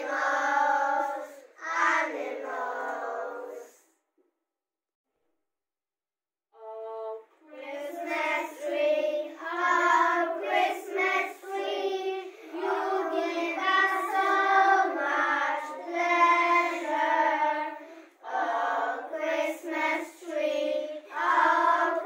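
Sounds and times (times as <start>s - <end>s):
children singing in unison: 0.0s - 3.9s, 6.7s - 22.0s.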